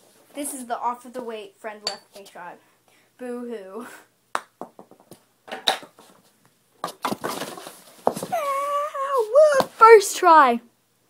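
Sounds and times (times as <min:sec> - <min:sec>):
boy yelling: 0:08.3 - 0:10.6.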